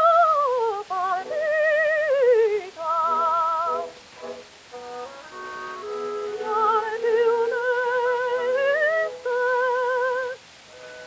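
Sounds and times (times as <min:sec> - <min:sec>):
woman singing with vibrato: 0:00.0 - 0:04.4, 0:05.8 - 0:10.6
faint record hiss: 0:00.0 - 0:11.0
instrumental accompaniment notes: 0:01.2 - 0:11.0.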